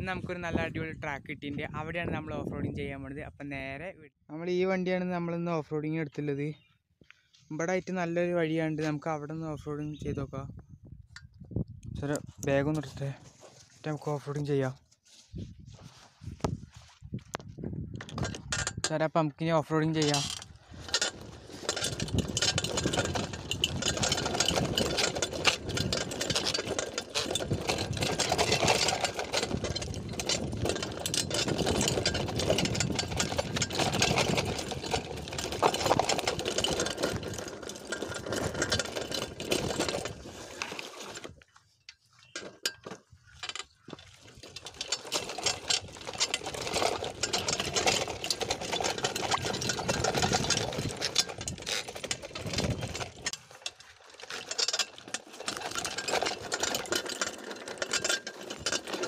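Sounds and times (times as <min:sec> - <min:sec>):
bicycle clattering and rattling: 0:08.5 - 0:59.0
tyres on stony dirt: 0:11.9 - 0:19.0, 0:19.7 - 0:59.0
rapid clicks and knocks: 0:19.9 - 0:41.3, 0:41.9 - 0:59.0.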